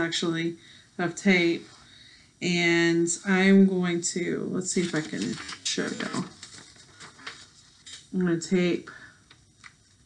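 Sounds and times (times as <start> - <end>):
magazine pages rustling: 4.7 - 8.1.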